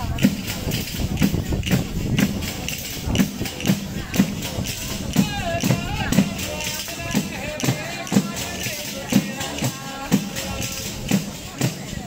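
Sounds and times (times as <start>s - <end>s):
frame drum with jingles beating: 0.0s - 12.0s.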